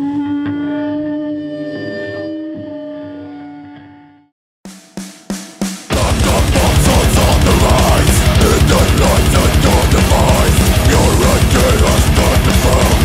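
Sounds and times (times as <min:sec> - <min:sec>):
sharp drum hits: 0:04.7 - 0:13.0.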